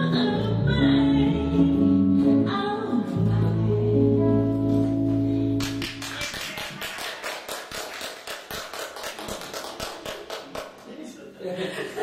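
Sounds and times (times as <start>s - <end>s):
audience applause: 5.6s - 10.9s.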